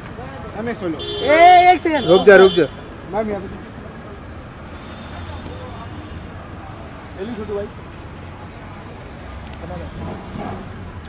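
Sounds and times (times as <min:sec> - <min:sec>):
faint traffic rumble: 0:00.0 - 0:11.0
low street noise: 0:00.0 - 0:11.0
man calling out: 0:01.0 - 0:02.7.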